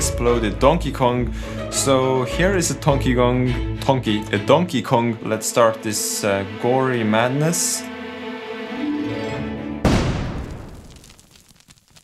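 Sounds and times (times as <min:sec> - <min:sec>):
explosion boom: 0:09.8 - 0:11.3
crackles: 0:09.9 - 0:12.0.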